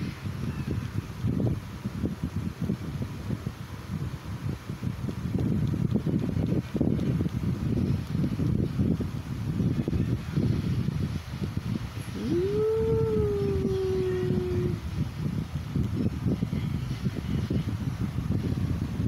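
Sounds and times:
low microphone rumble: 0:00.0 - 0:19.0
puppy howling: 0:12.2 - 0:14.8.

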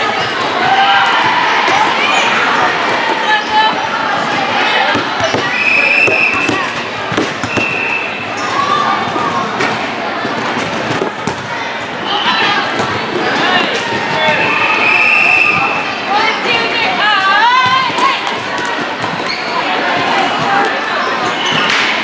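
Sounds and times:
echoing voices: 0:00.0 - 0:22.0
volleyball bouncing and struck: 0:04.9 - 0:07.9, 0:09.6 - 0:11.6
shoe squeaks: 0:19.2 - 0:19.7, 0:21.0 - 0:21.7.

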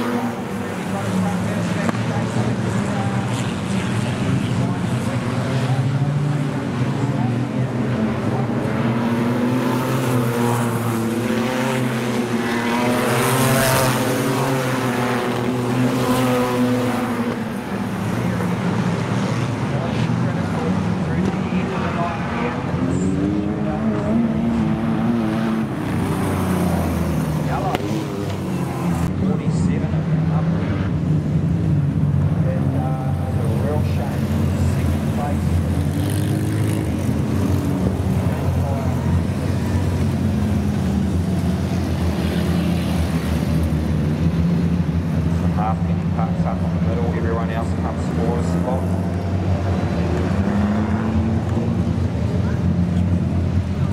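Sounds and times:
race car engines passing: 0:00.0 - 0:53.9.

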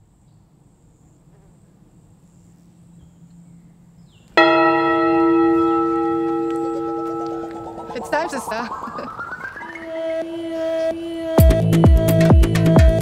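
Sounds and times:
bell ringing: 0:04.4 - 0:09.4.

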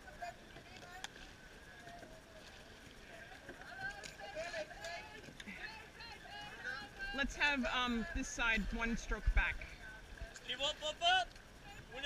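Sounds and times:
faint voices talking: 0:00.0 - 0:12.0
steady low hiss: 0:00.0 - 0:12.0.

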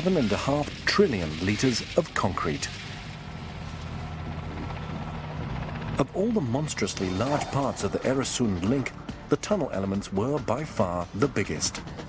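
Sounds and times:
helicopter droning overhead: 0:00.0 - 0:12.0.

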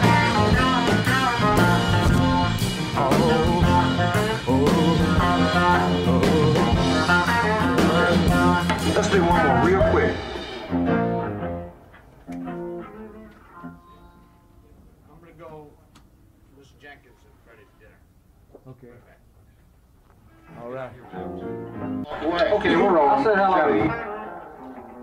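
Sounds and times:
blues rock band playing: 0:00.0 - 0:14.4, 0:21.1 - 0:25.0.

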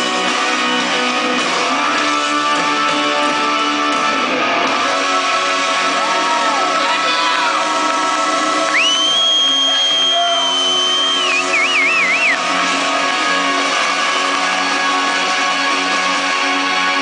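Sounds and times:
crowd cheering: 0:04.8 - 0:17.0
high piercing whistle: 0:08.7 - 0:12.4.

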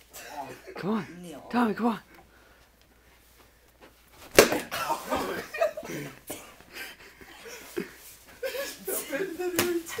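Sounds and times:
ball smacking skin: 0:04.2 - 0:04.7, 0:09.5 - 0:09.8.

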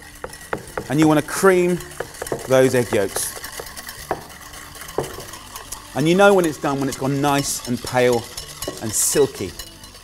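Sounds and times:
whisk beating eggs in a bowl: 0:00.0 - 0:10.0.

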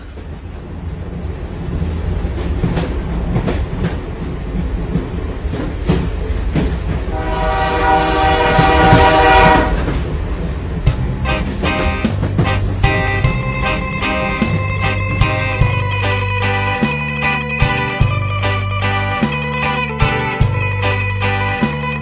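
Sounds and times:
wheels clicking over rail joints: 0:00.0 - 0:07.2, 0:08.5 - 0:15.8
train rumbling on rails: 0:00.0 - 0:19.4, 0:20.0 - 0:21.3
train horn blast: 0:07.1 - 0:10.0.

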